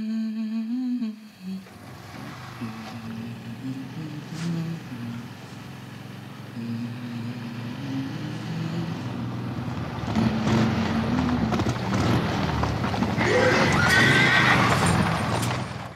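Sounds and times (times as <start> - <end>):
motorcycle engine running: 1.6 - 15.9
horses' hooves clattering: 9.1 - 15.9
horse neighing: 13.2 - 15.2.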